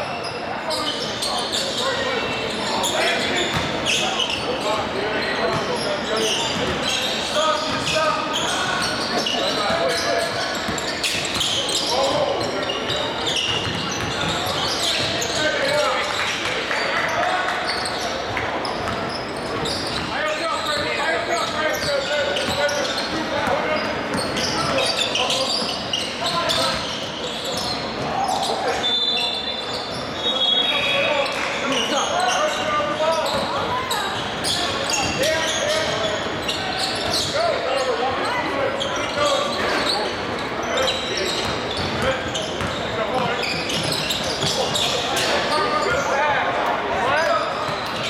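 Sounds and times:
shoe squeal: 0.0 - 48.0
shouting and chatter: 0.0 - 48.0.

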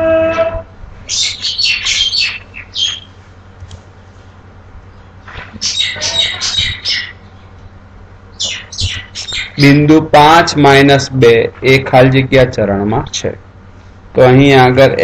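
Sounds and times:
bird chirping and squawking: 1.1 - 3.2, 5.0 - 7.6, 8.3 - 9.8.

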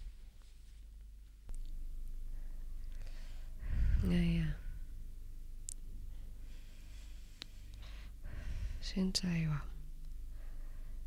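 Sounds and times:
steady low hum: 0.0 - 11.0
person speaking: 3.6 - 4.8.

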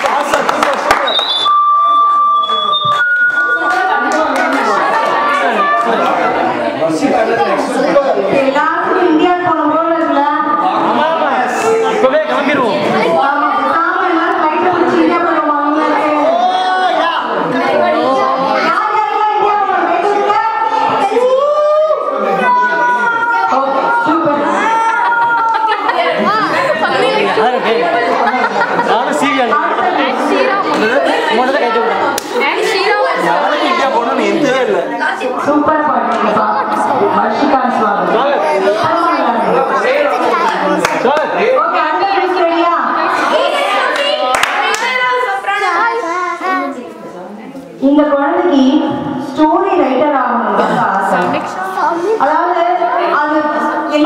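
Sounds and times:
people talking at once: 0.0 - 54.0
microphone feedback whistling: 1.0 - 3.7
faint chatter: 2.5 - 54.0.

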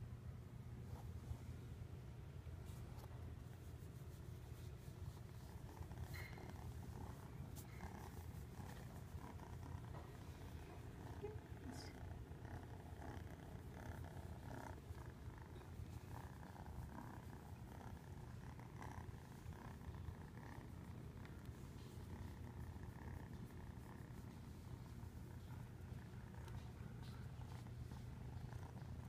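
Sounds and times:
cat purring: 2.7 - 29.0.

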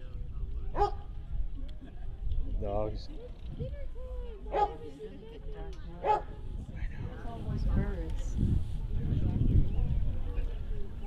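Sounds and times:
dogs barking: 0.8 - 1.0, 4.5 - 4.8, 6.0 - 6.3.

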